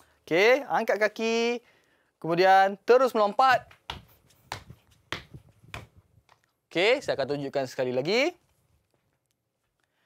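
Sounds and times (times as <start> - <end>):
sneakers landing on hard floor: 3.6 - 6.0.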